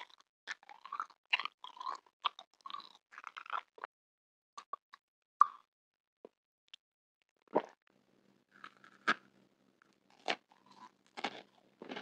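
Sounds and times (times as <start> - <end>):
mouth chewing candy clicks: 0.0 - 3.9.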